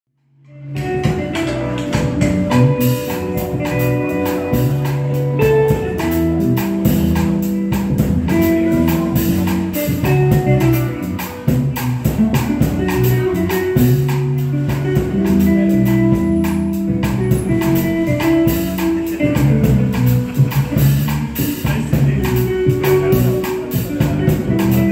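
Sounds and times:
electric bass notes: 0:00.2 - 0:24.9
electric guitar chords and melody: 0:00.2 - 0:24.9.

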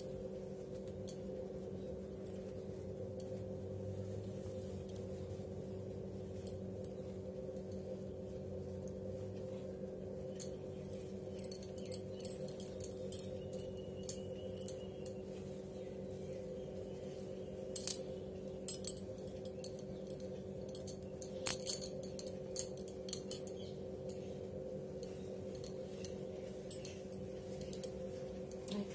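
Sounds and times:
low hum: 0:00.0 - 0:28.9
fabric rustling: 0:00.1 - 0:23.5, 0:24.2 - 0:28.9
bangles clinking: 0:04.4 - 0:08.1, 0:10.2 - 0:15.3, 0:17.4 - 0:28.9.

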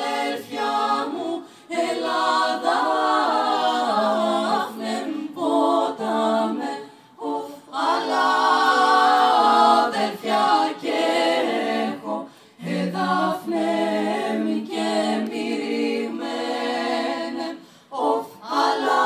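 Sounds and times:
women singing a cappella: 0:00.0 - 0:19.0.

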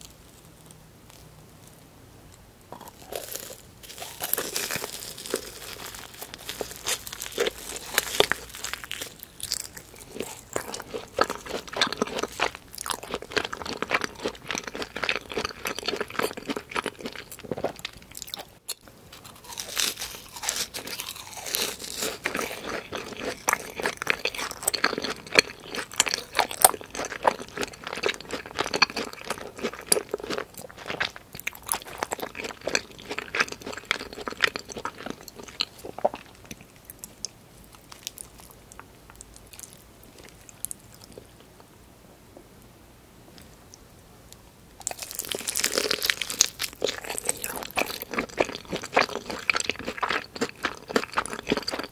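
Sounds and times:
crisp crunching: 0:02.7 - 0:18.5, 0:19.1 - 0:37.1, 0:44.8 - 0:51.9
wet chewing: 0:02.8 - 0:41.4, 0:44.8 - 0:51.9.

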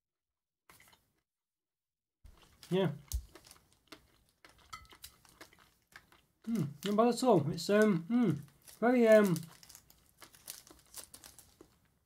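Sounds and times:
chewing chocolate: 0:02.3 - 0:07.0, 0:07.7 - 0:12.0.

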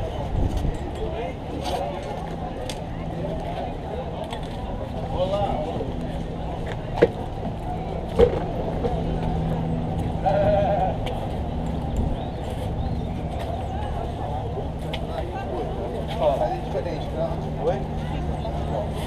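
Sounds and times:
street background hum: 0:00.0 - 0:19.0.

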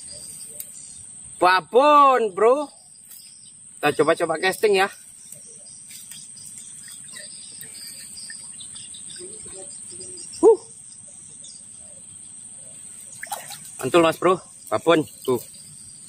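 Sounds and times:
high-pitched insect drone: 0:00.0 - 0:16.0.

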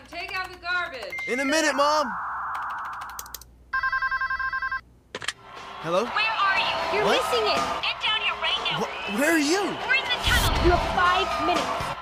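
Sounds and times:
electronic telephone ring: 0:02.4 - 0:04.8.

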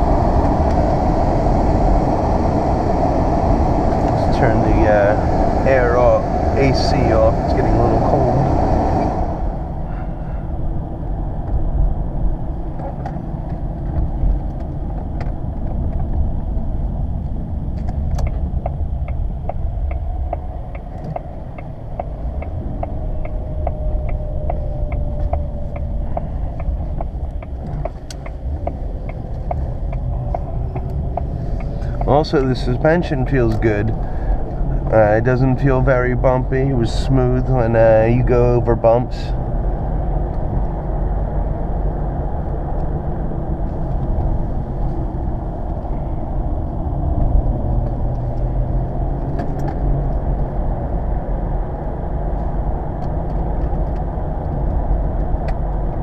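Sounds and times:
car cabin road noise: 0:00.0 - 0:56.0
turn signal ticking: 0:17.2 - 0:36.7.

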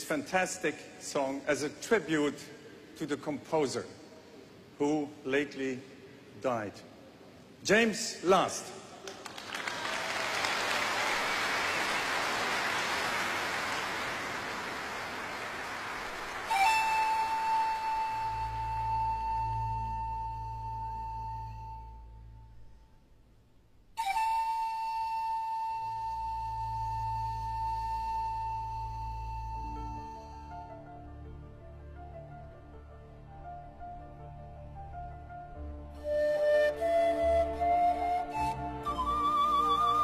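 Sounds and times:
audience applauding: 0:09.0 - 0:18.1
pan flute long notes: 0:16.3 - 0:22.6, 0:24.0 - 0:31.1, 0:35.6 - 0:40.0
low orchestral bass: 0:25.9 - 0:40.0.

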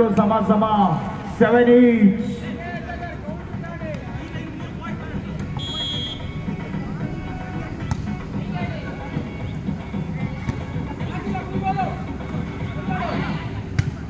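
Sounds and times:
murmur of spectators' voices: 0:00.0 - 0:14.0
referee's whistle: 0:05.5 - 0:06.4.

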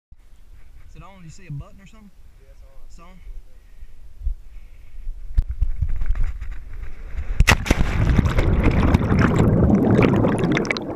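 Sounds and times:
wind noise on microphone: 0:04.1 - 0:10.9
splash into water: 0:07.3 - 0:10.9
underwater bubbling: 0:07.6 - 0:10.9.

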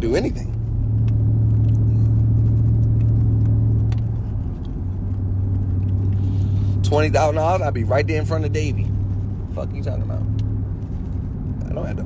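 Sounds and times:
car engine drone in cabin: 0:00.0 - 0:12.0.

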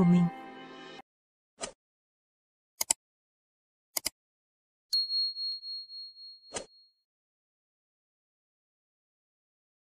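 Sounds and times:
notification bell ding: 0:05.0 - 0:06.8.

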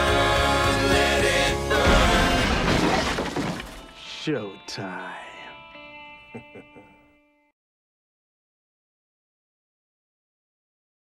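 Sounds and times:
crash with shattering debris: 0:01.7 - 0:04.0.

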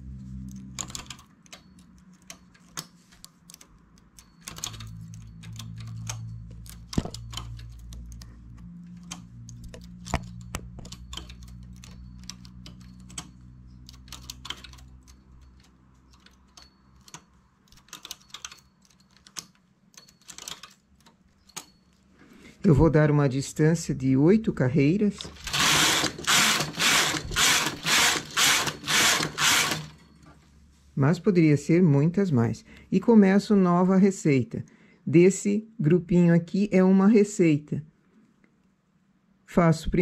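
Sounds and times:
knitting machine needles clicking: 0:00.0 - 0:22.1, 0:25.0 - 0:30.0.

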